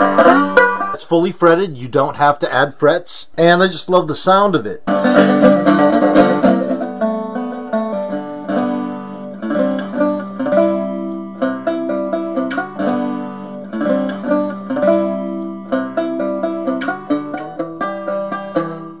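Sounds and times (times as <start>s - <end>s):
cigar box guitar picked melody: 0.0s - 1.0s, 4.9s - 19.0s.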